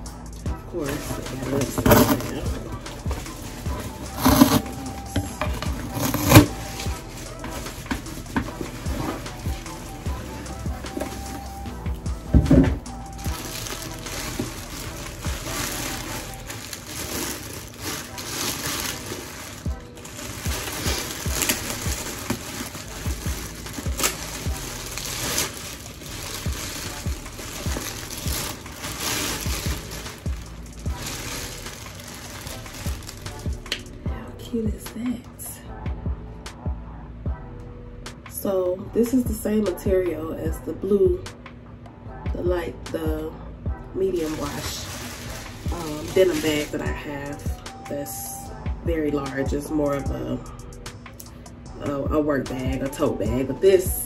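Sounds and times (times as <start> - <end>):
plastic bag crinkling: 0.9 - 2.5, 3.1 - 33.9, 44.0 - 47.5
cardboard box knocks and scrapes: 5.2 - 6.5.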